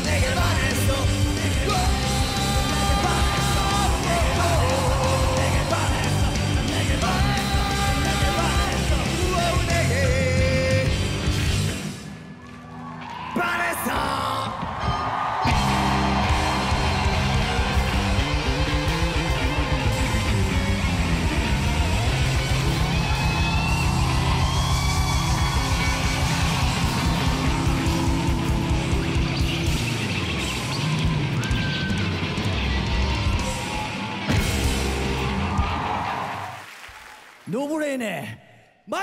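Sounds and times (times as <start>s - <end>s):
live punk rock band: 0.0s - 12.1s, 15.5s - 36.0s.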